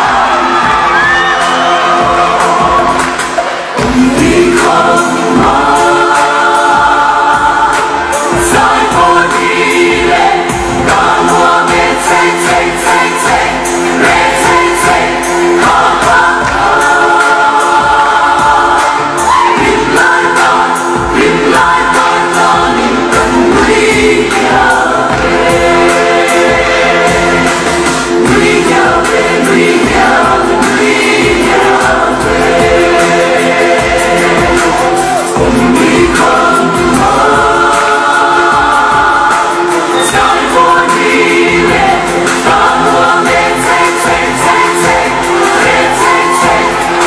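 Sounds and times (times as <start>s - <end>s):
steady beat: 0.0s - 47.0s
voices singing together: 0.0s - 47.0s.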